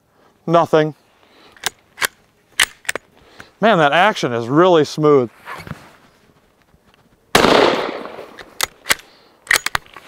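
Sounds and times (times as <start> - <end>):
rifle bolt metallic clicks: 1.5 - 3.1, 8.3 - 10.0.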